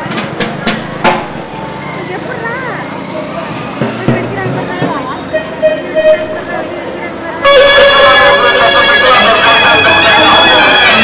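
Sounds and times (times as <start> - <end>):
crowd chatter: 0.0 - 11.0
reedy wind band playing: 5.2 - 11.0.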